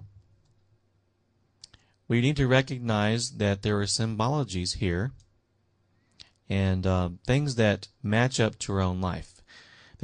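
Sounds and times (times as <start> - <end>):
person speaking: 1.6 - 5.3.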